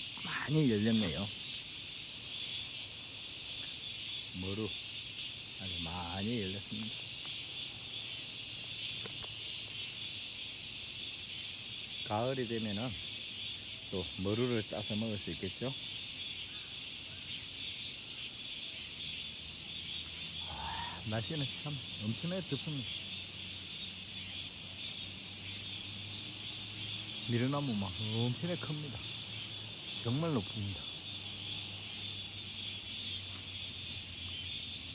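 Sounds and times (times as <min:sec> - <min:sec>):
cicadas and insects chorus: 0:00.0 - 0:34.9.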